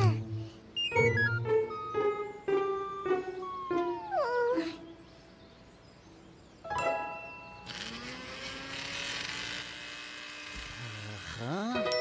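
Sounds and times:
cartoon character whimper: 3.5s - 4.9s.

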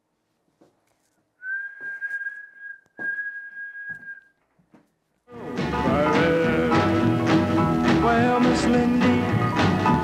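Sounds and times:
person whistling long notes: 1.4s - 4.4s.

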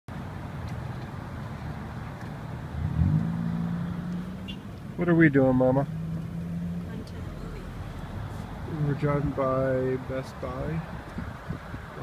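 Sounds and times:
road and engine rumble: 0.1s - 12.0s
engine note rising: 2.7s - 9.3s.

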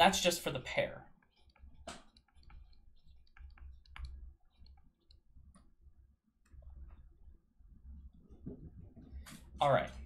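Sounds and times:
low steady hum: 0.0s - 10.0s
stylus tapping on drawing tablet: 1.5s - 5.7s.

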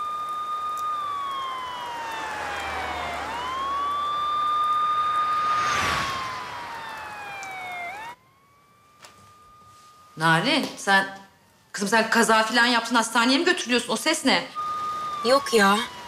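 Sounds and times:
emergency siren wailing: 0.0s - 16.0s
rushing noise: 1.0s - 8.2s.

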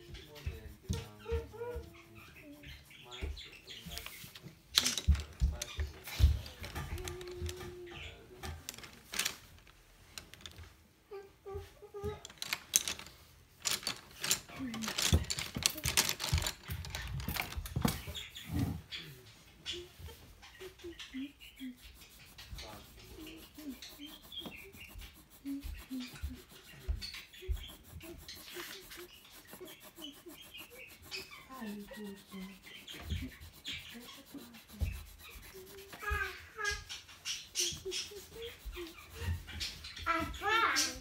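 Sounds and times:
pencil scratching on paper: 0.0s - 4.3s, 19.7s - 41.0s.

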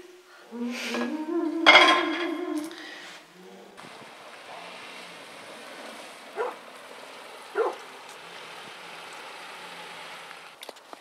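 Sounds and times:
car creeping on snow: 2.5s - 11.0s
dog barking: 6.4s - 6.6s, 7.5s - 7.9s.

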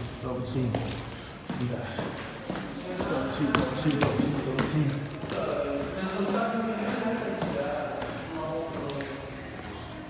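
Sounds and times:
man's voice: 2.8s - 9.6s.

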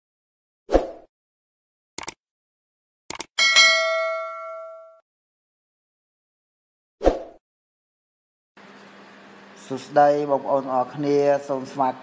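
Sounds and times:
bright bell ding: 3.4s - 5.0s.

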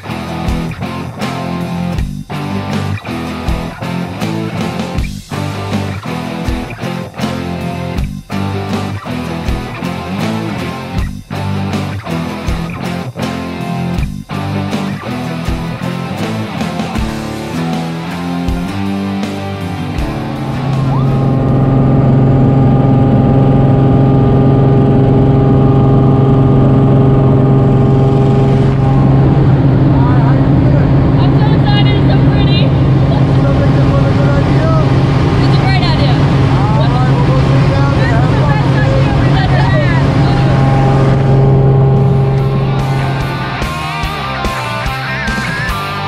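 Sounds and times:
propeller plane engine droning: 13.8s - 46.0s.

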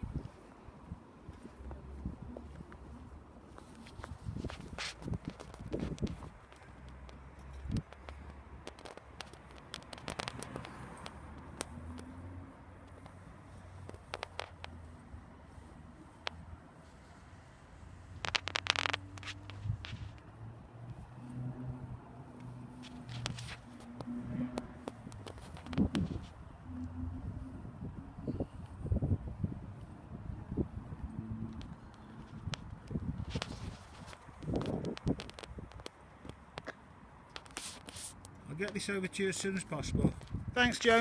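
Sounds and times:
footsteps crunching on tarmac: 0.1s - 12.2s, 12.8s - 21.2s, 22.1s - 26.5s, 31.6s - 39.5s
short rustle: 1.3s - 8.2s, 22.4s - 24.0s, 31.7s - 35.6s, 37.3s - 38.4s
handling clicks and taps: 3.6s - 12.2s, 22.4s - 26.2s, 31.5s - 38.8s.

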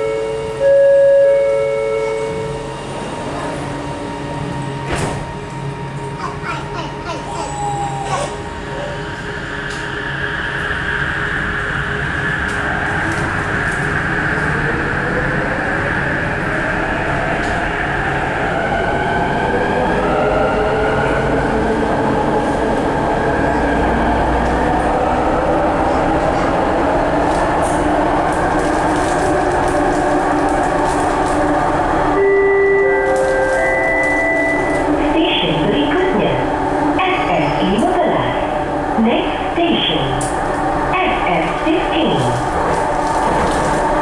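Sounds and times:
train rumbling on track: 0.0s - 44.0s.

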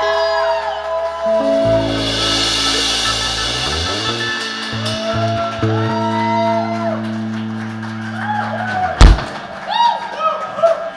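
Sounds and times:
rock band final chord: 1.4s - 9.5s.

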